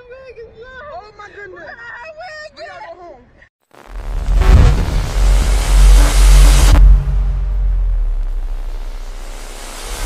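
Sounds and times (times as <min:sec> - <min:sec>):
deep bass rumble: 0:03.8 - 0:10.0
held low tones: 0:03.9 - 0:10.0
bright rushing whoosh: 0:04.0 - 0:10.0.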